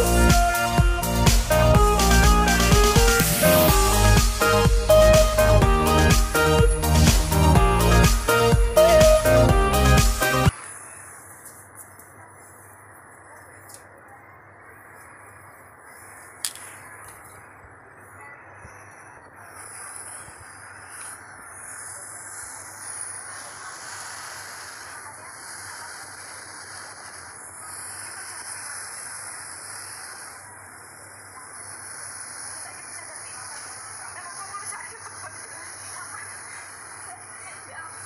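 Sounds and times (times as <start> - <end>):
sharp click: 16.4 - 17.2.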